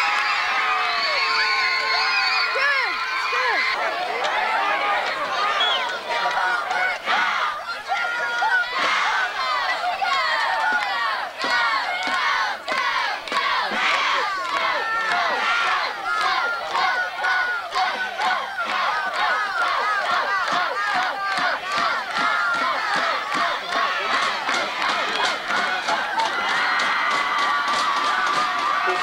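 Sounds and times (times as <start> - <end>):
crowd yelling and cheering: 0.0 - 29.0.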